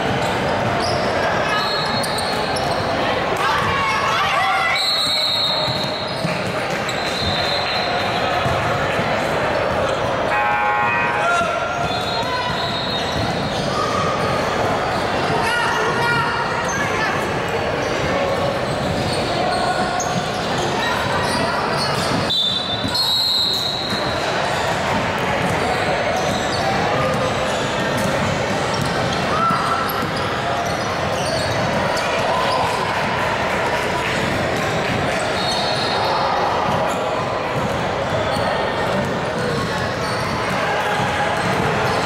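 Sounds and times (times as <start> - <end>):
players' voices echoing: 0.0 - 42.0.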